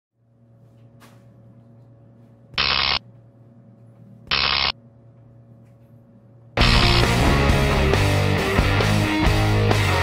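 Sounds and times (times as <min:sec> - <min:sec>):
electrical hum: 0:00.2 - 0:08.7
loud electric zaps: 0:02.6 - 0:03.0, 0:04.3 - 0:04.7.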